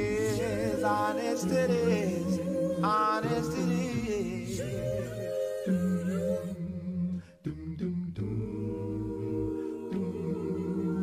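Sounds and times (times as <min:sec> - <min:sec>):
a cappella voices singing: 0:00.0 - 0:11.0.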